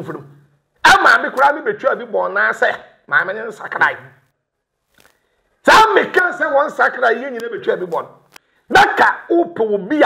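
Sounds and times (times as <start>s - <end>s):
man speaking: 0.0s - 4.3s, 5.6s - 10.0s.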